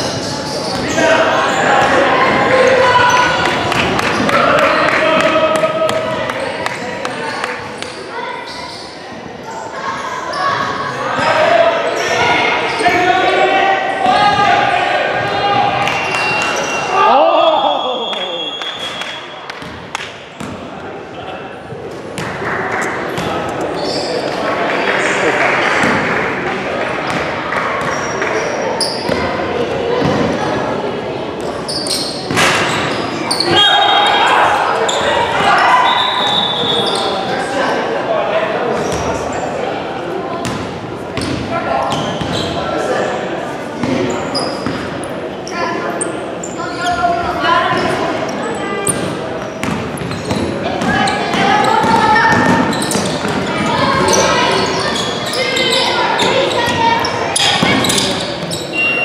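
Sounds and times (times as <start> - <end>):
voices calling out: 41.1 - 59.0.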